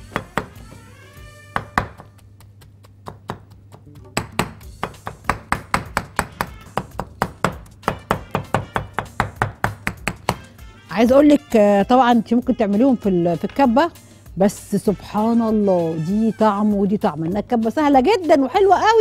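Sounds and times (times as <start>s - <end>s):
knife chopping on cutting board: 0.0s - 0.8s, 1.5s - 2.1s, 4.2s - 10.5s.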